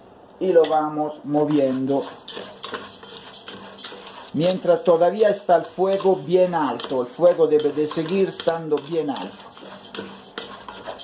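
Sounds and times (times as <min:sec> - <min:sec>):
wooden spatula scraping a pot: 0:01.3 - 0:11.0.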